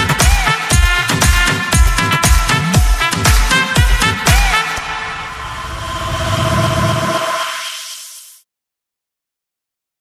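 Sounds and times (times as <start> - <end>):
electronic noise wash with held tones: 4.8 - 8.4.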